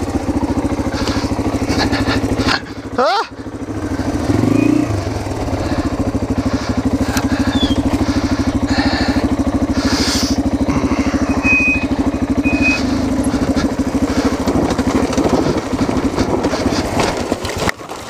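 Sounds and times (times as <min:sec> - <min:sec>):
motorbike engine running at low revs: 0:00.0 - 0:18.0
short high squeaks: 0:07.4 - 0:07.9, 0:11.4 - 0:13.1.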